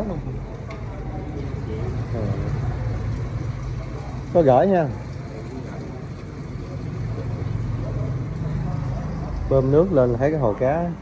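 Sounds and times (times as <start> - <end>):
electric water pump humming: 0.0 - 11.0.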